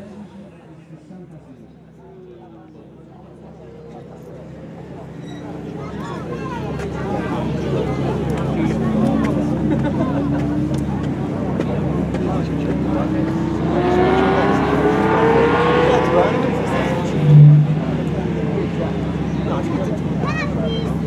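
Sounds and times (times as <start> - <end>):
faint spectators' voices: 0.0 - 21.0
race car engine accelerating past: 12.8 - 19.7.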